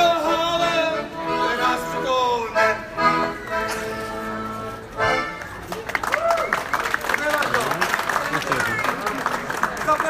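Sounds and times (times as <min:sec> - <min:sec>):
man singing: 0:00.0 - 0:02.9
piano accordion playing: 0:00.0 - 0:05.7.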